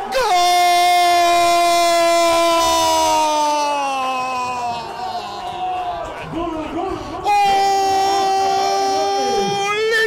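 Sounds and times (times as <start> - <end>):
commentator's long goal shout: 0.0 - 10.0.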